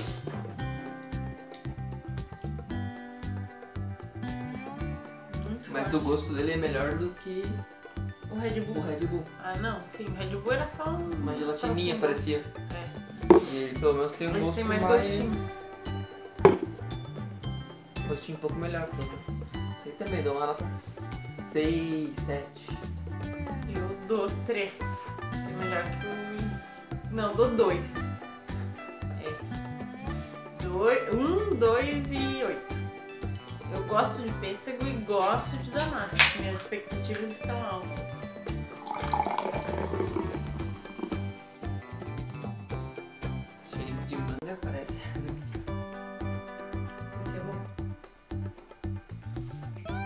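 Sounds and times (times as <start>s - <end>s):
background music: 0.0s - 50.0s
knock on tabletop: 13.2s - 13.5s, 16.4s - 16.8s
soda pouring into a glass: 38.7s - 41.3s.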